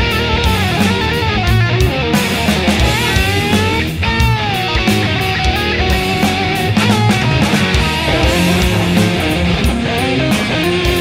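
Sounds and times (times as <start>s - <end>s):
bass and drums: 0.0s - 11.0s
distorted electric guitar: 0.0s - 11.0s.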